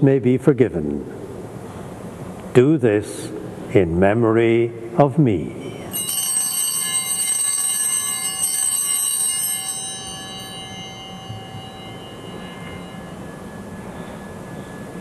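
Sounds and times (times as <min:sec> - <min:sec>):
small bells ringing: 0:05.6 - 0:15.0.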